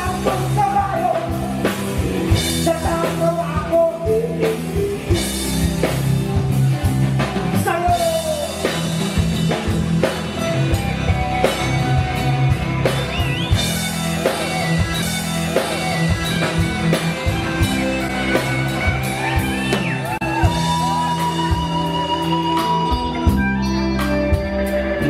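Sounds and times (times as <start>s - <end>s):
drum kit steady beat: 0.0s - 25.0s
rock guitar: 0.0s - 25.0s.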